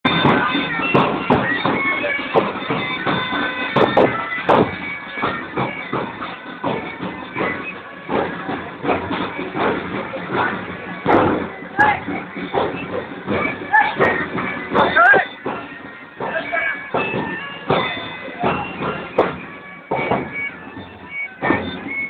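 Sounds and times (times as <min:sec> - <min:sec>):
loud crowd voices: 0:00.0 - 0:22.0
pipe band playing bagpipes: 0:00.1 - 0:22.0
scattered knocks: 0:00.1 - 0:22.0.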